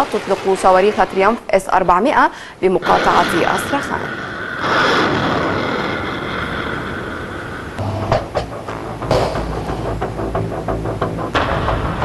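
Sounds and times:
rocket motor rushing: 0:02.8 - 0:07.9.

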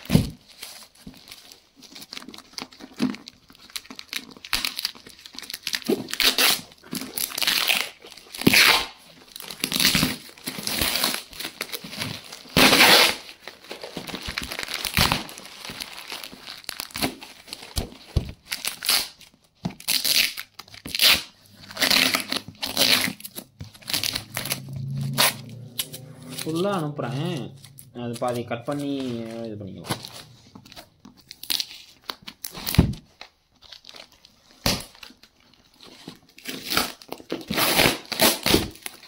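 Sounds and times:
tape and plastic wrap tearing: 0:00.0 - 0:39.0.

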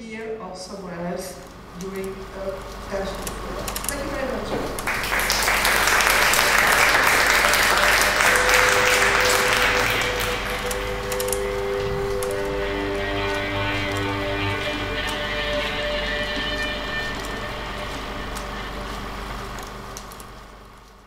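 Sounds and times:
audience applauding: 0:04.7 - 0:17.4
outro music with long held notes: 0:05.2 - 0:20.7.

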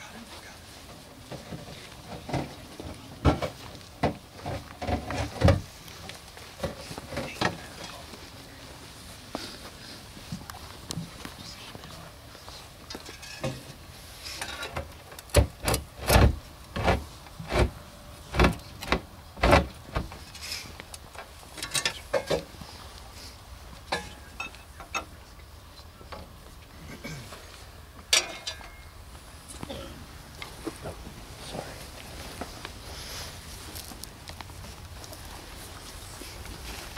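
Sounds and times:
light clatters: 0:10.2 - 0:16.2.

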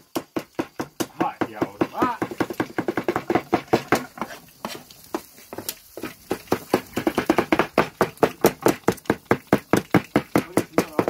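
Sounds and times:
cleaver chopping on plastic board: 0:00.1 - 0:04.4, 0:06.3 - 0:11.0.

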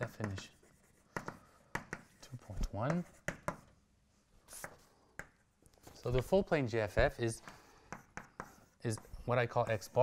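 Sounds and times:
chalk scratching on blackboard: 0:00.0 - 0:03.8, 0:04.5 - 0:04.9, 0:07.2 - 0:10.0
chalk tapping on blackboard: 0:00.0 - 0:03.8, 0:04.5 - 0:05.4, 0:07.3 - 0:10.0.

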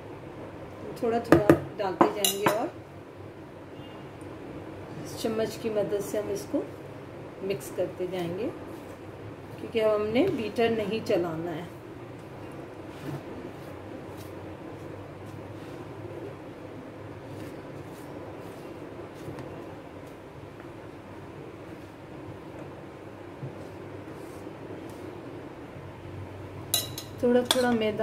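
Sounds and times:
steady background noise: 0:00.0 - 0:28.0.

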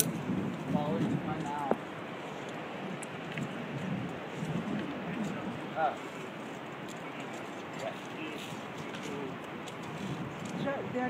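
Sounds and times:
wind on microphone: 0:00.0 - 0:11.0
faint voices: 0:04.2 - 0:11.0.

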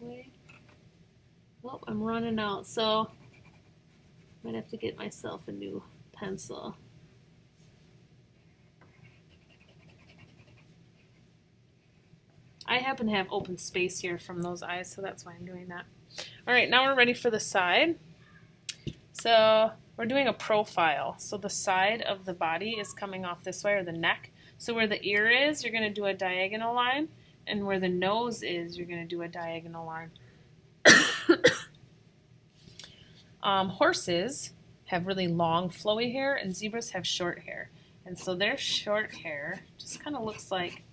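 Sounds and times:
pencil scratching on paper: 0:03.0 - 0:04.7, 0:08.9 - 0:11.3
woman coughing: 0:30.8 - 0:31.7.

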